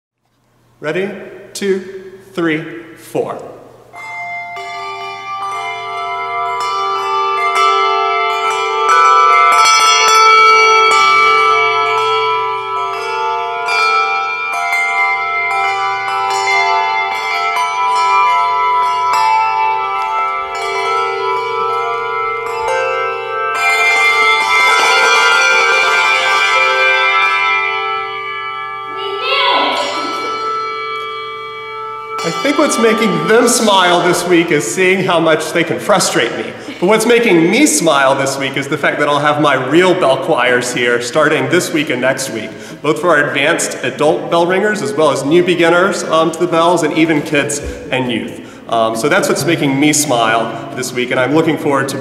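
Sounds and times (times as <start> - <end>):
handbells playing a tune: 3.9 - 52.0.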